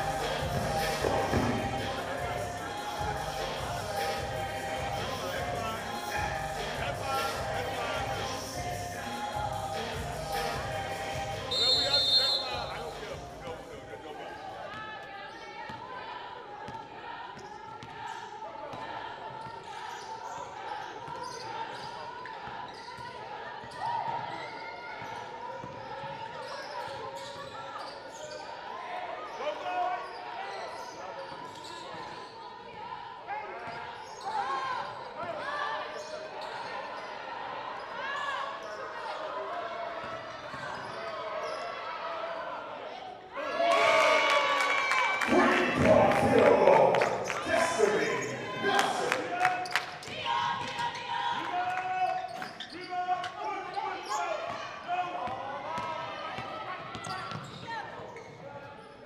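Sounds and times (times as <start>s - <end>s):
voices in echoing hall: 0.0s - 59.0s.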